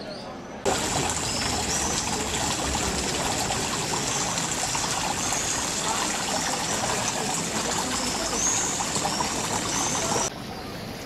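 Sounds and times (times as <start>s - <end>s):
water rushing in a channel: 0.7s - 10.3s.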